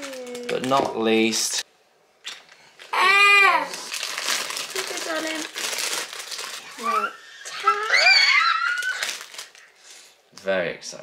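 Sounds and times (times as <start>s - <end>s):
wrapping paper crinkling: 0.0s - 1.4s, 2.8s - 9.9s
excited high-pitched voices: 2.9s - 3.9s, 6.7s - 9.3s.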